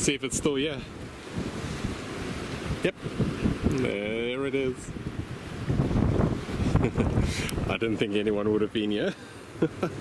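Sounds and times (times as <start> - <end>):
wind gusting on microphone: 0.0 - 8.9
surf rushing: 0.0 - 10.0.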